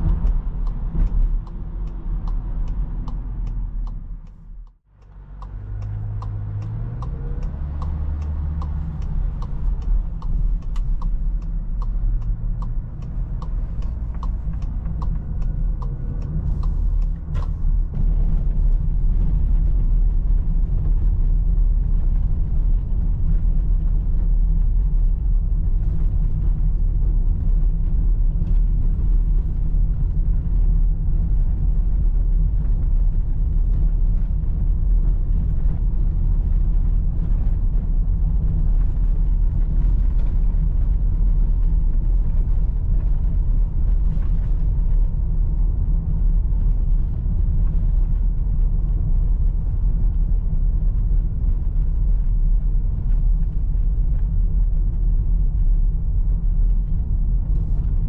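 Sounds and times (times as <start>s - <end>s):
tyres rumbling over cobblestones: 0.0s - 58.0s.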